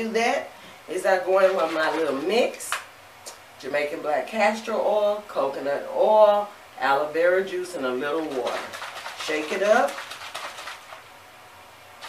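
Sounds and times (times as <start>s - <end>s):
liquid sloshing in spray bottle: 8.2s - 11.1s.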